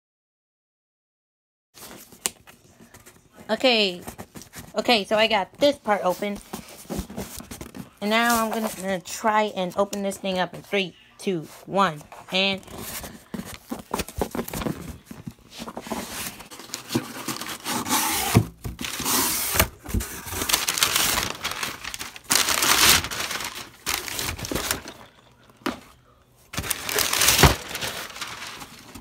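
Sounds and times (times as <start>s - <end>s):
cardboard box tearing and rustling: 12.6s - 25.0s, 26.6s - 29.0s.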